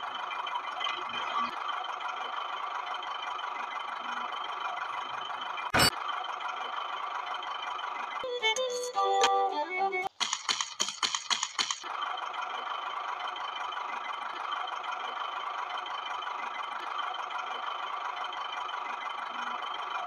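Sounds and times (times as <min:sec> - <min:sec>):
toy electric motor whirring: 0:10.0 - 0:11.9
clicks and rattles: 0:10.1 - 0:12.0.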